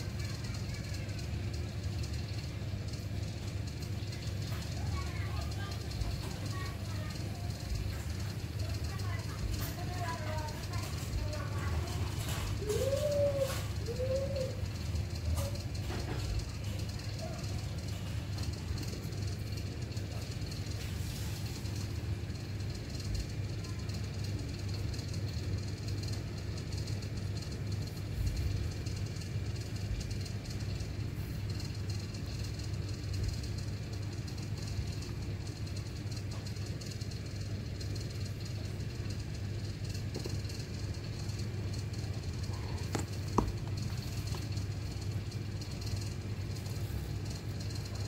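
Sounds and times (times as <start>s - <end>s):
low background hum: 0.0s - 48.0s.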